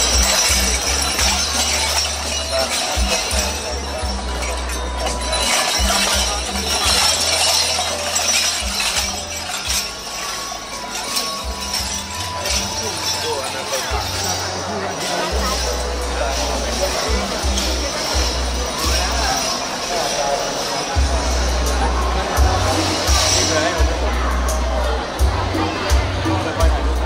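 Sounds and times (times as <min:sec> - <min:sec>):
music over loudspeakers: 0:00.0 - 0:19.6, 0:20.4 - 0:27.0
bells jingling on costume: 0:00.0 - 0:27.0
crowd chatter: 0:00.0 - 0:27.0.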